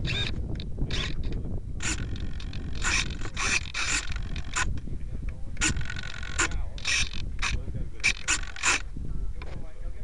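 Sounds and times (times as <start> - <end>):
servo whirring bursts: 0.0 - 4.8, 5.5 - 9.0.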